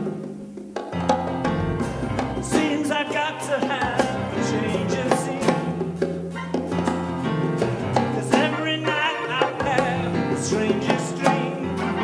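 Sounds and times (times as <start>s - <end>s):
hand drums: 0.1s - 8.3s
live band playing groove: 1.2s - 6.0s.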